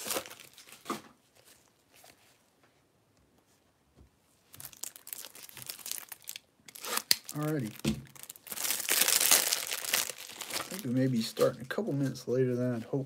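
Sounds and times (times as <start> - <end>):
plastic packaging crinkling: 0.0 - 2.2, 4.5 - 11.8.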